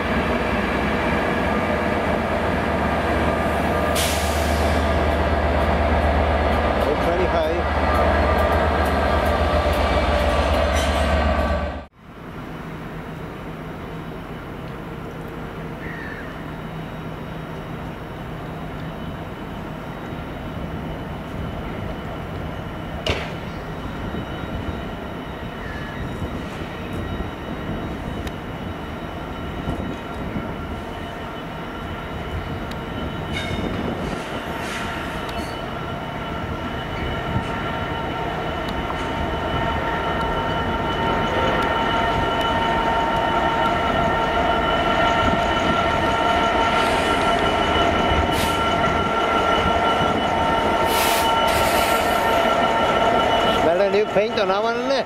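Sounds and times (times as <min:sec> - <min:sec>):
diesel locomotive engine rumble: 0:00.0 - 0:55.0.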